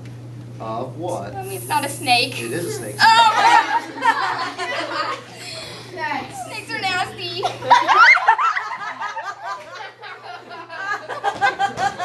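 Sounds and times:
young people laughing: 3.0 - 5.8, 7.4 - 12.0.

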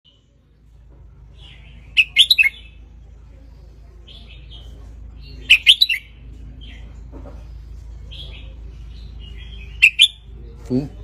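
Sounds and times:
bulbul singing: 1.4 - 3.0, 4.0 - 7.0, 8.0 - 10.4.

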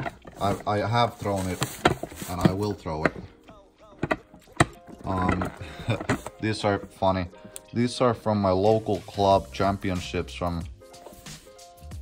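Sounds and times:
plastic discs knocking together: 0.0 - 6.4.

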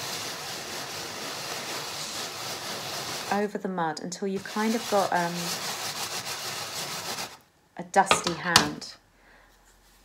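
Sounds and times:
palm rubbing dried mud on metal tray: 0.0 - 7.4.

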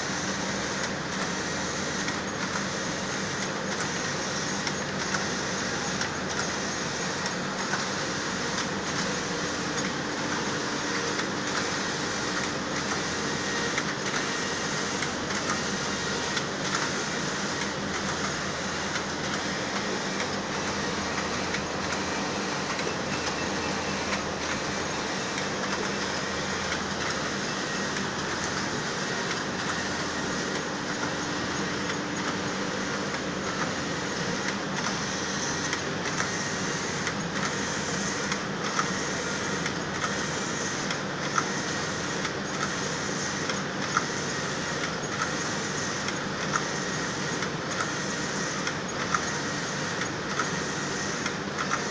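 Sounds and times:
knitting machines mechanical din: 0.0 - 51.9.

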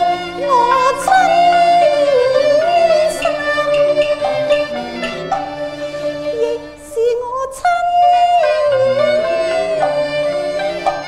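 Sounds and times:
high opera voice singing: 0.0 - 11.0
instrumental accompaniment: 0.0 - 11.0.

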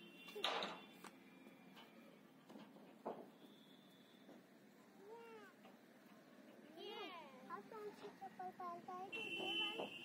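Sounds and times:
faint high-pitched cries: 4.8 - 5.7.

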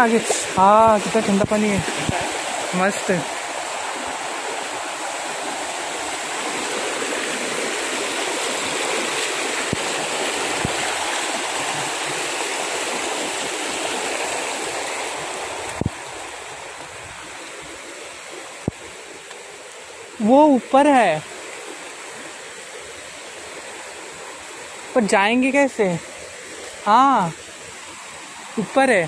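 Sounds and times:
stream rushing over rocks: 0.0 - 29.0.

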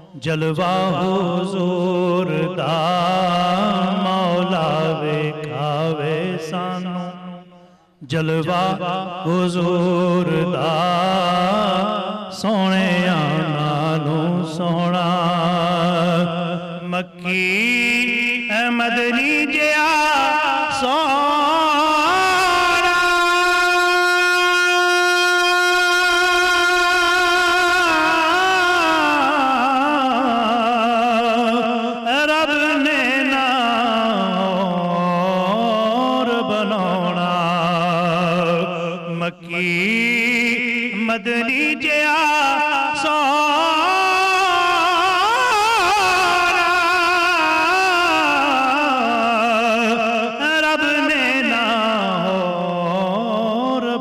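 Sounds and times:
man singing long held note: 0.0 - 54.0.

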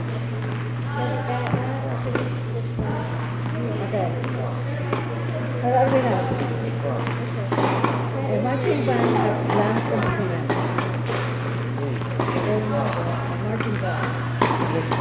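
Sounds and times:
steady low hum: 0.0 - 15.0
tennis balls being hit: 1.3 - 15.0.

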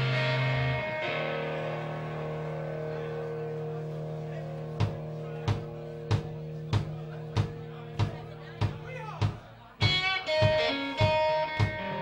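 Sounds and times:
electric guitar chord ringing: 0.0 - 8.6, 9.9 - 12.0.

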